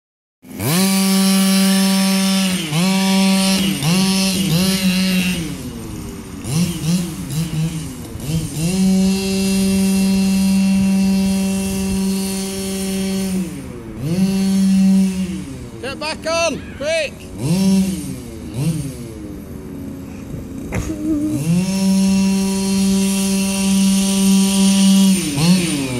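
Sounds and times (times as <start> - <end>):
small two-stroke engine revving: 0.4 - 25.9.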